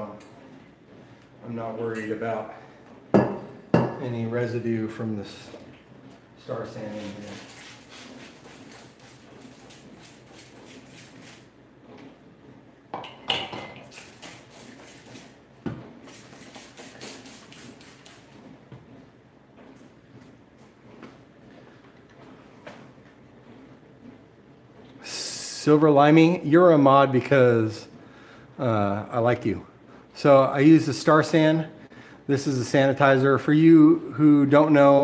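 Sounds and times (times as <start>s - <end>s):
spray bottle squirts: 6.8s - 11.5s, 13.9s - 15.4s, 16.0s - 18.3s.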